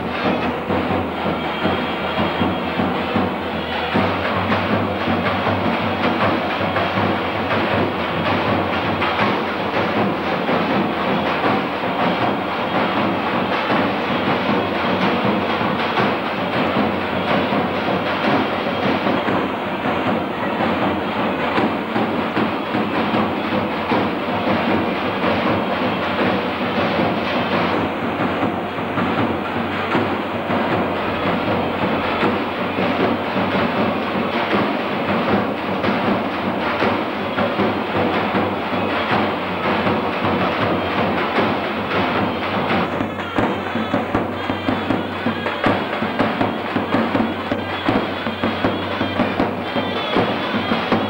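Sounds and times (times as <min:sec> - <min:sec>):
drum fast steady beat: 0:00.0 - 0:51.0.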